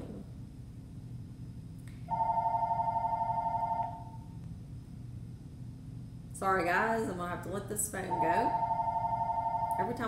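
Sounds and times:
telephone ringing: 2.1 - 4.2, 8.1 - 9.9.

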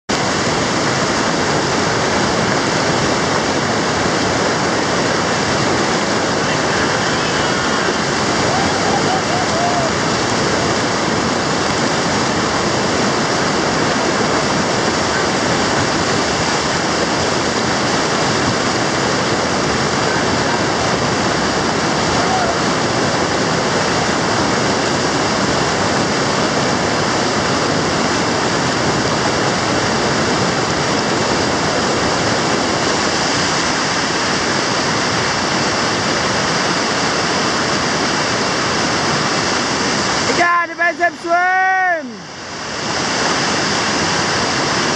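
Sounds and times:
whitewater rapids rushing: 0.1 - 44.9.

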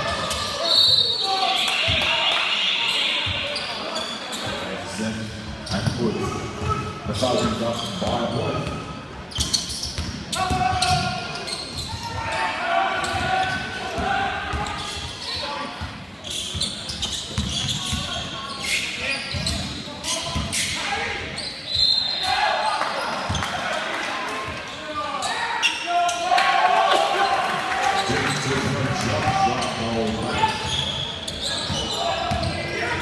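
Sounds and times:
basketball bouncing on wooden court: 9.4 - 11.0, 16.5 - 18.1
indistinct shouts and voices: 10.3 - 15.8, 17.7 - 33.0.

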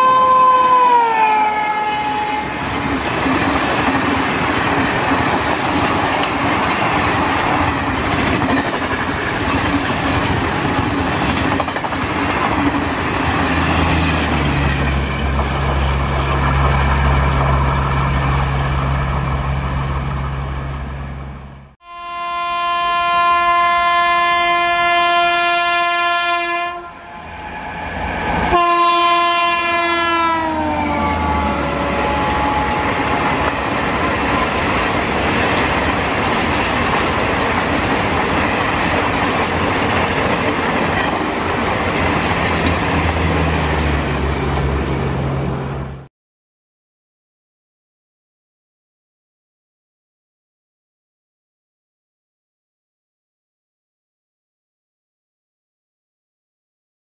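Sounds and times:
locomotive horn blast: 0.0 - 2.6, 21.8 - 33.1
train coaches rumbling on rails: 0.0 - 21.6, 26.6 - 46.1.

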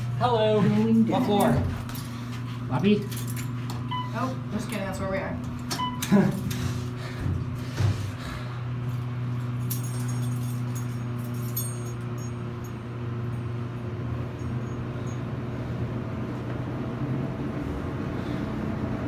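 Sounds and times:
elevator hum and rumble: 0.0 - 19.0
elevator doors shutting: 3.9 - 8.2.

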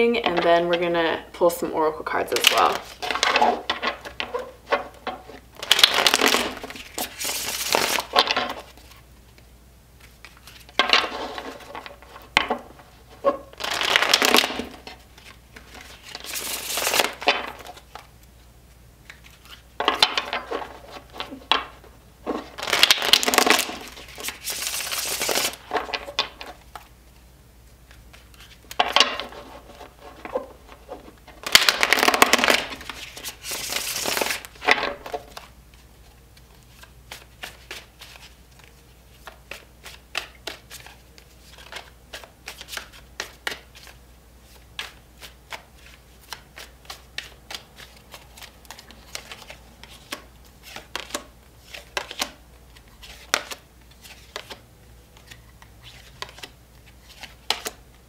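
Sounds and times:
cards being shuffled: 2.3 - 18.4, 19.0 - 26.9, 27.8 - 57.8.

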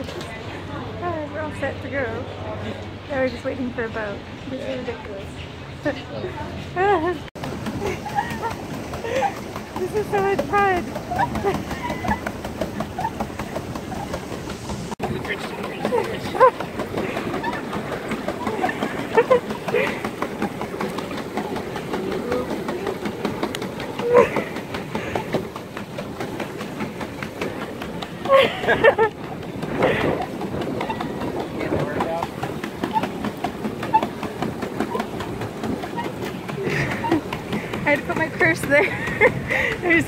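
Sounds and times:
paddles churning water: 0.0 - 40.0
pedal boat drive rattling: 0.0 - 40.0.

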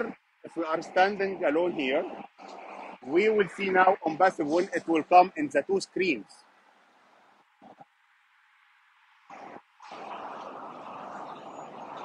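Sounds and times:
highway road traffic noise: 0.0 - 12.0.

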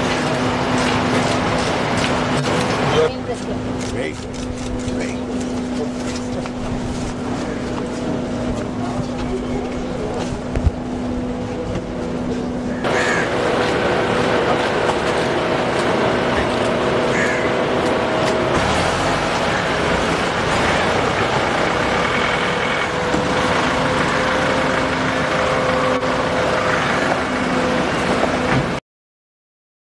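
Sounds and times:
car engine running: 0.0 - 28.8
outdoor crowd noise: 0.0 - 28.8.

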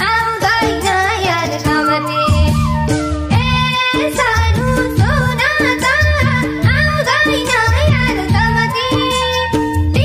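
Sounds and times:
folk instrumental accompaniment: 0.0 - 10.0
woman singing melismatic melody: 0.0 - 10.0.

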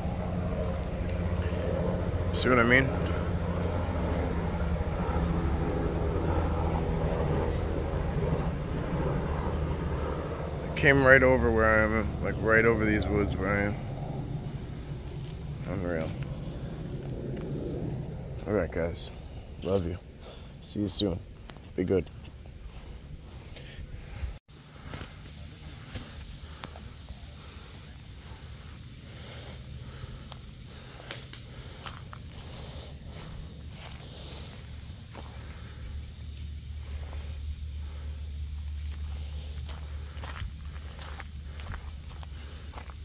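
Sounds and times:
low steady rumble: 0.0 - 43.0
footsteps on a path: 21.3 - 43.0.

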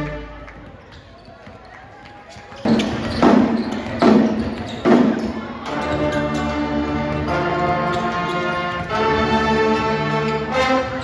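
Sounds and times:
brass band music: 0.0 - 0.5, 5.7 - 11.0
crowd noise in a gym: 0.0 - 11.0.

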